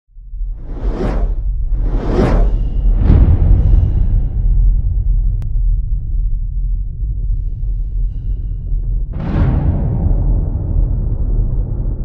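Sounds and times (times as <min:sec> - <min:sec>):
deep bass rumble: 0:00.1 - 0:12.0
whoosh: 0:00.4 - 0:05.4.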